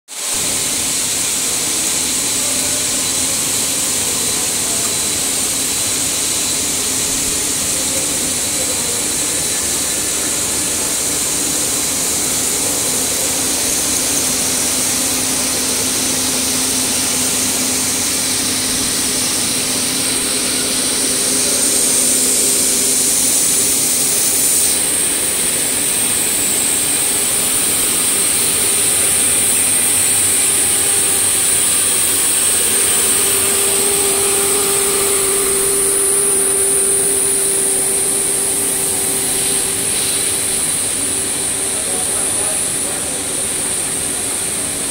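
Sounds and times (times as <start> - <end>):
machinery running with high hiss: 0.1 - 44.9
low machine hum: 0.4 - 44.9.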